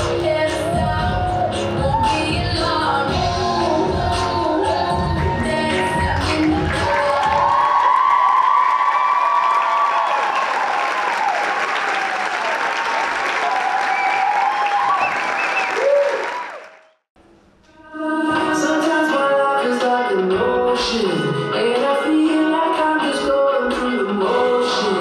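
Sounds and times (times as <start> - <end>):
audience applause and cheering: 0.0 - 2.5, 3.1 - 17.0
song playing: 0.0 - 7.8, 18.0 - 25.0.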